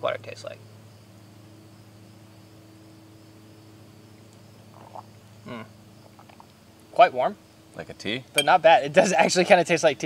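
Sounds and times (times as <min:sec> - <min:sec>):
faint low hum: 0:00.0 - 0:10.0
short mm vocal sound: 0:05.4 - 0:05.7.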